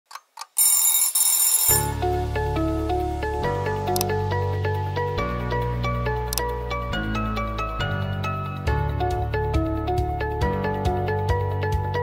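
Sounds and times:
alarm clock bell ringing: 0:00.6 - 0:02.0.

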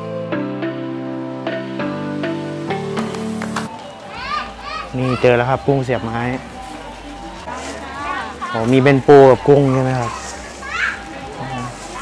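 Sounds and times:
background voices of people: 0:03.7 - 0:12.0.

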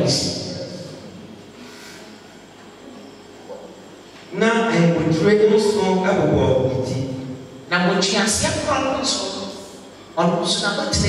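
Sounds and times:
sound system hiss and hum: 0:00.0 - 0:11.0.

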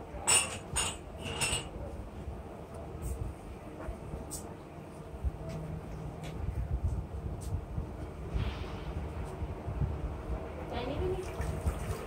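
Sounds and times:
steady low rumble: 0:05.0 - 0:11.2.

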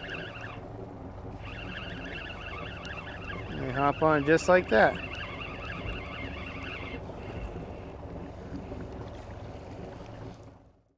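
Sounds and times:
fishing reel whirring: 0:00.0 - 0:07.9
wind on microphone: 0:00.0 - 0:10.5
steady low hum: 0:00.0 - 0:10.9.

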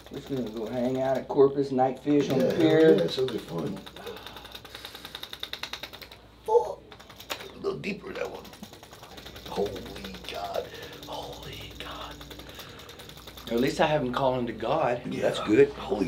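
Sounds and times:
electric percussion device tapping: 0:00.0 - 0:01.4, 0:02.1 - 0:06.2, 0:06.9 - 0:14.8.

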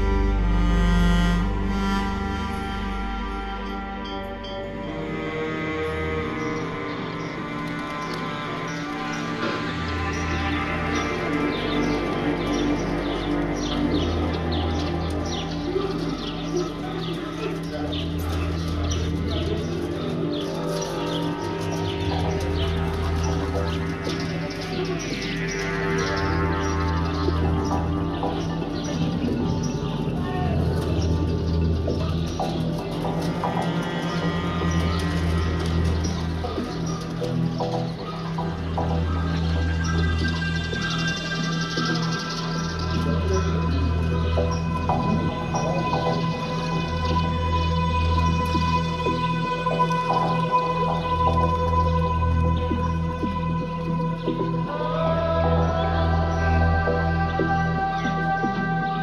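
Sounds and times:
deep bass note: 0:00.0 - 0:07.2
sustained synth pads: 0:00.0 - 0:59.0.

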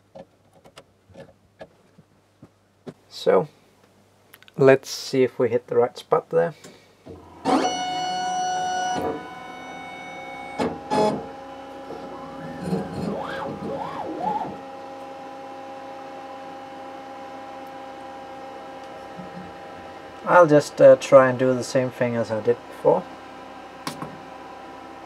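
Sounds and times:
laser cutter whine and hum: 0:07.2 - 0:25.0
wavering pitch glides: 0:12.4 - 0:14.6.

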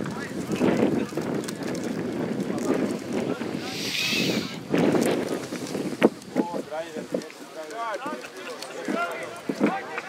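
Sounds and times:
wind buffeting microphone: 0:00.0 - 0:08.2.

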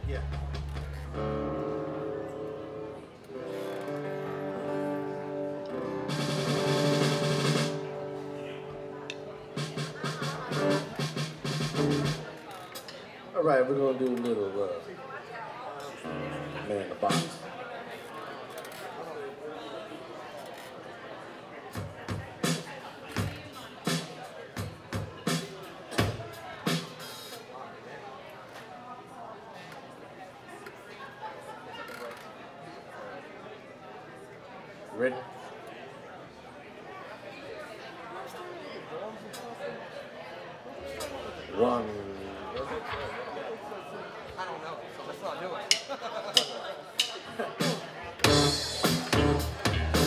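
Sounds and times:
guitar: 0:00.0 - 0:13.0, 0:16.0 - 0:17.4, 0:47.6 - 0:50.0
background chatter: 0:00.0 - 0:50.0.

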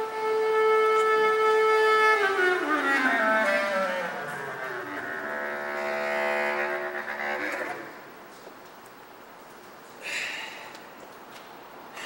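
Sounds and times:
bass clarinet: 0:00.0 - 0:08.2.

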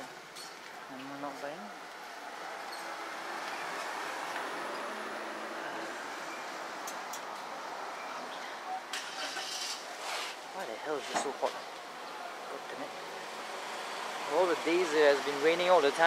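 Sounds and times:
vehicle passing on road: 0:01.5 - 0:16.0.

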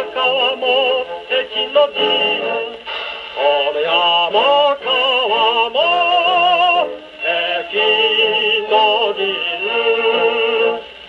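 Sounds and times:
person singing on gramophone record: 0:00.0 - 0:11.0.

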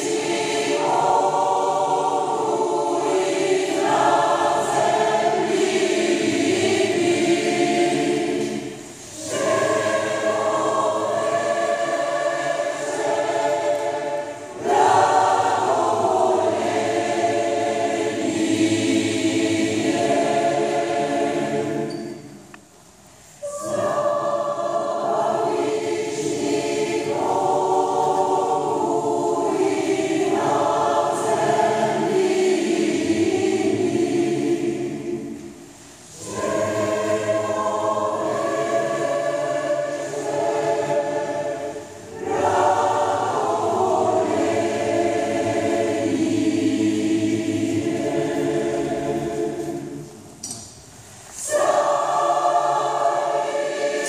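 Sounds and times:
mixed choir singing: 0:00.0 - 0:22.5, 0:23.3 - 0:50.5, 0:51.1 - 0:54.0.

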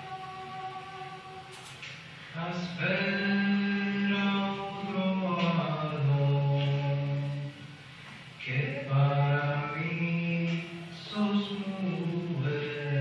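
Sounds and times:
person singing unaccompanied: 0:00.0 - 0:07.6, 0:08.4 - 0:13.0.

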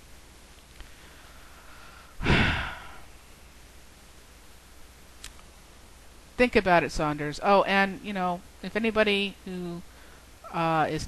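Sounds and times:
woman sighing: 0:02.2 - 0:03.1.

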